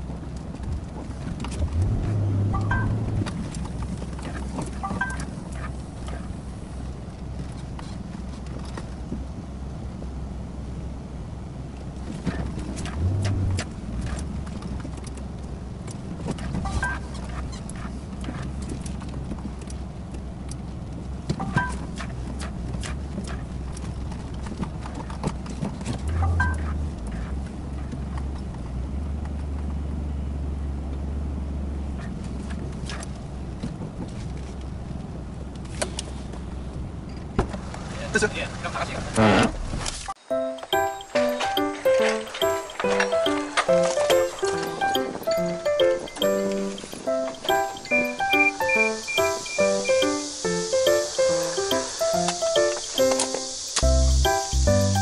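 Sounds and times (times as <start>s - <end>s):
diesel truck engine running: 0.0s - 25.0s, 25.7s - 34.0s, 40.7s - 55.0s
short squeaks: 16.4s - 18.6s, 39.2s - 55.0s.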